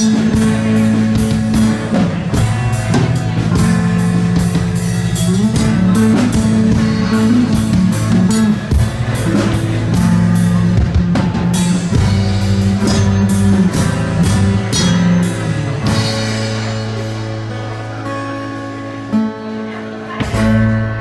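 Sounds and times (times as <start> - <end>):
drum kit beat: 0.0 - 19.3, 20.1 - 21.0
electric bass: 0.0 - 21.0
strummed acoustic guitar: 0.0 - 21.0.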